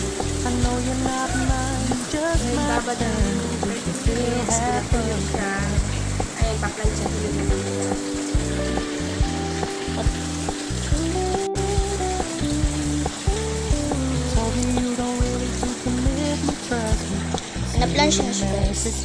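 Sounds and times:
pop song with pulsing bass: 0.0s - 19.0s.

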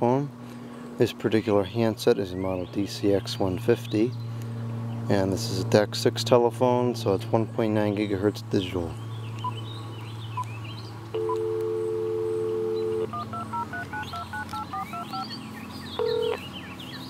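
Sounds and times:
birds chirping: 0.6s - 5.7s, 7.0s - 17.0s
dial tone: 11.2s - 15.2s, 16.0s - 16.4s
phone key beeps: 11.2s - 15.3s, 16.0s - 16.4s
touch-tone digits dialing: 11.2s - 15.3s, 16.0s - 16.4s.

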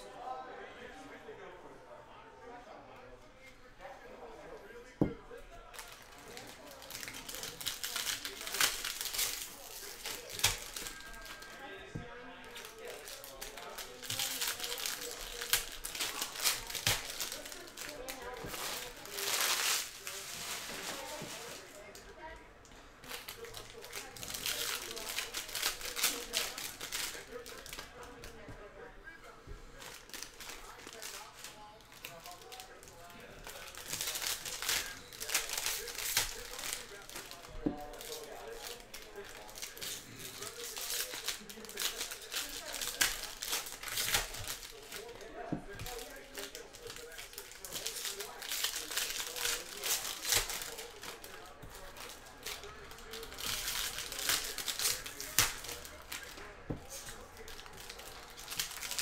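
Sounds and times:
foil wrappers crinkling: 5.6s - 22.1s, 23.0s - 28.5s, 29.2s - 59.0s
packs ripped open: 5.8s - 11.6s, 12.6s - 21.7s, 33.5s - 45.1s, 45.8s - 59.0s.

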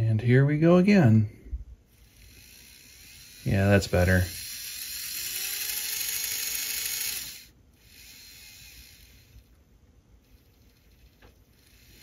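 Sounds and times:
small electric motor whining: 1.9s - 9.6s, 10.2s - 12.0s.

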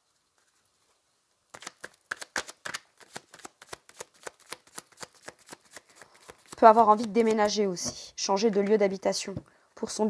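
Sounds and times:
cards shuffled by hand: 1.5s - 7.8s.

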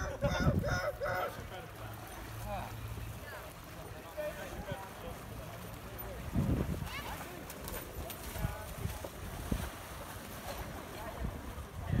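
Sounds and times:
wind buffeting microphone: 0.0s - 1.2s, 6.2s - 7.3s, 8.3s - 10.0s, 10.6s - 12.0s
voices and shouts: 0.0s - 2.2s
water splashing from wading: 0.0s - 12.0s.

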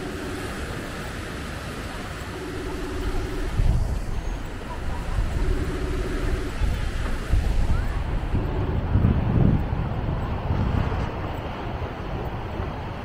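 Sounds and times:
small waves washing on beach: 0.0s - 13.0s
wind gusting on microphone: 0.0s - 13.0s.

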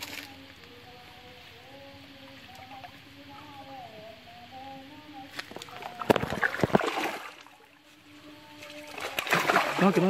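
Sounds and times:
splashing in stream water: 0.0s - 0.4s, 5.4s - 7.8s, 8.6s - 10.0s.

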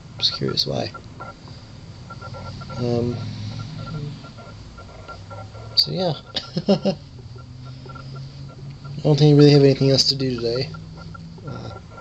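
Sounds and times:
faint high electronic tone: 0.2s - 12.0s.

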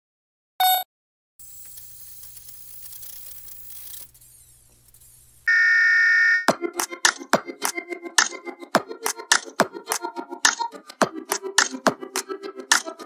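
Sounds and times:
loud electronic beep: 0.6s - 0.9s, 5.5s - 6.5s
faint crackling hiss: 1.4s - 5.5s.

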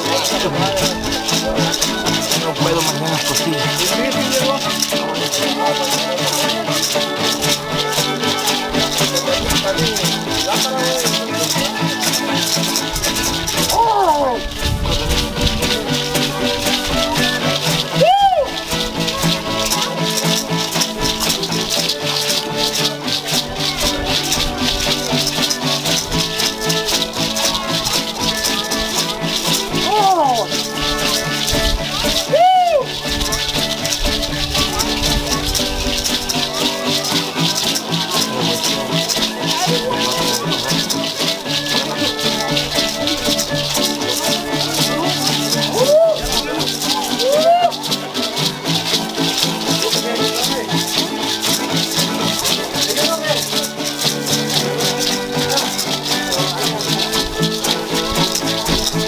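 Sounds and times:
dance music with strings: 0.0s - 59.0s
hand rattles shaken: 0.0s - 59.0s.

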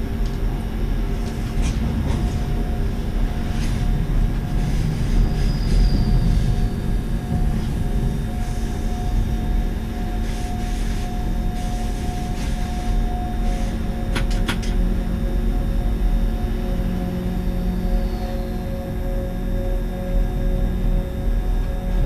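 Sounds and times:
electric train rumble: 0.0s - 22.0s
train motor whine: 0.0s - 22.0s.

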